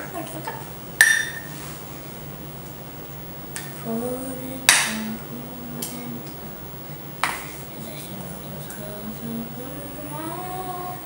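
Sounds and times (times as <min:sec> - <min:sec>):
utensil clinking on metal pot: 0:01.0 - 0:01.5.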